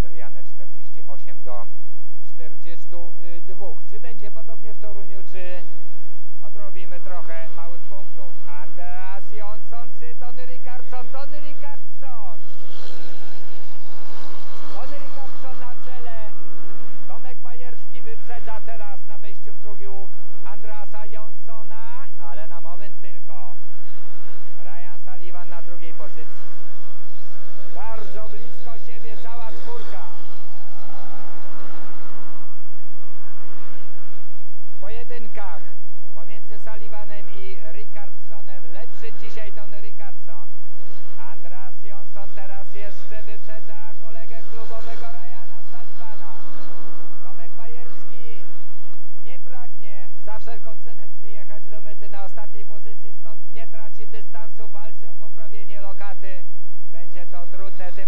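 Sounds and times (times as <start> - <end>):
motorcycle engines racing: 0.0 - 58.0.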